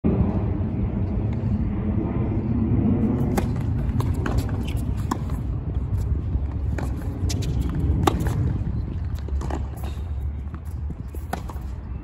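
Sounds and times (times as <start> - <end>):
steady low rumble: 0.0 - 12.0
tennis ball struck by rackets: 3.2 - 5.4, 6.6 - 9.9, 11.2 - 11.8.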